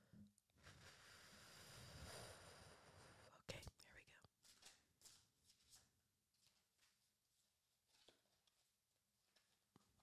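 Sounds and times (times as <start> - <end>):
person whispering a prayer: 3.3 - 4.3.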